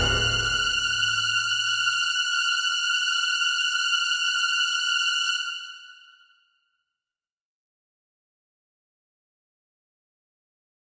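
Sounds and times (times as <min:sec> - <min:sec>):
orchestral piece ending: 0:00.0 - 0:01.7.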